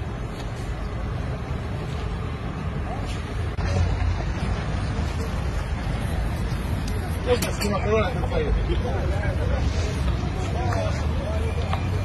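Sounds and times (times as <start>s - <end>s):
faint voices: 1.5s - 12.0s.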